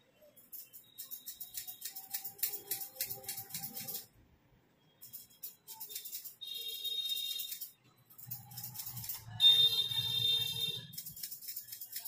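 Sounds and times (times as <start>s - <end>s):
scissors snipping hair: 0.5s - 4.1s, 5.1s - 6.4s, 7.4s - 9.3s, 10.9s - 12.0s.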